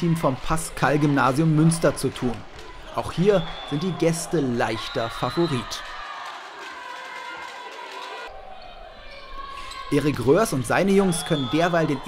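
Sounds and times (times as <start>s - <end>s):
spectators' voices: 0.0s - 12.0s
volleyball play on court: 0.0s - 12.0s.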